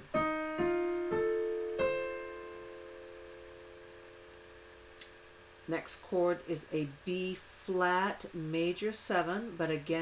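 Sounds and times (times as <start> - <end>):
digital piano chord: 0.0 - 5.8.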